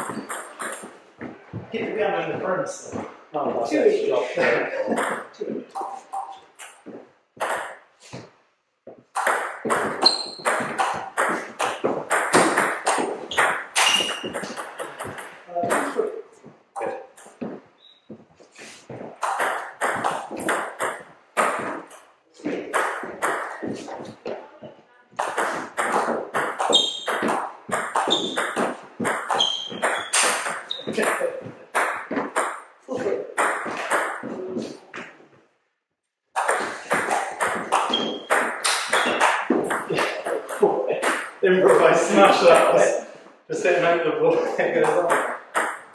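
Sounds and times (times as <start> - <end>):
voices: 1.5 - 6.4, 14.3 - 16.2, 30.7 - 31.6, 32.9 - 34.8, 38.9 - 45.3.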